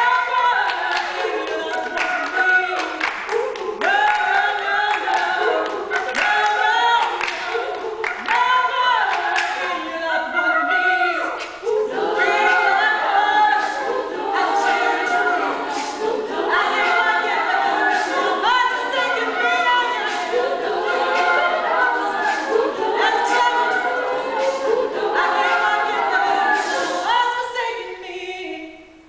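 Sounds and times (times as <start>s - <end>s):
women singing a cappella: 0.0s - 29.0s.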